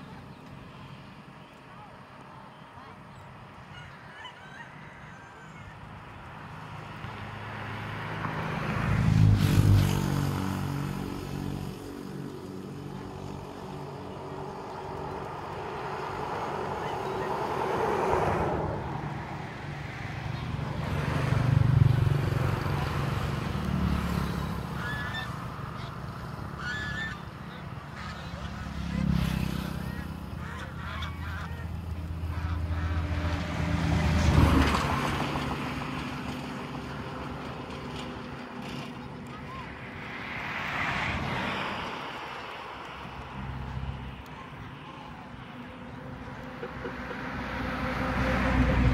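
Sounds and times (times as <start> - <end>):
geese honking: 3.6 - 5.9, 16.2 - 17.8, 24.4 - 33.8.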